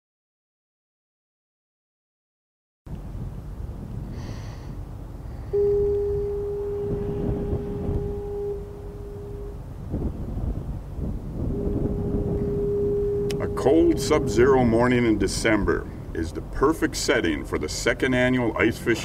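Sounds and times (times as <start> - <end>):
constant low rumble: 2.9 - 19.0
deep horn blasts: 5.3 - 16.1.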